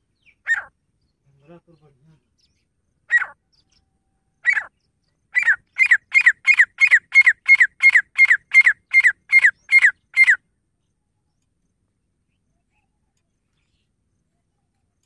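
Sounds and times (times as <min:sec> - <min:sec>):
francolin calling: 0:00.0 - 0:15.0.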